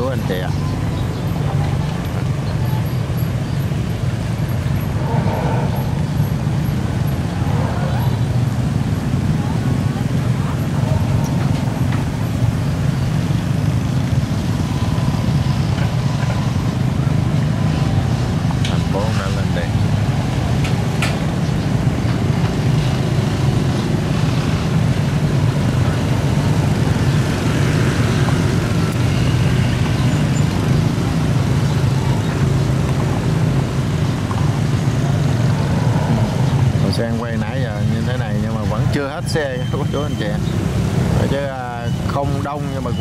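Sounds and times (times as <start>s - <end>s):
traffic crossing a bridge: 0.0s - 43.0s.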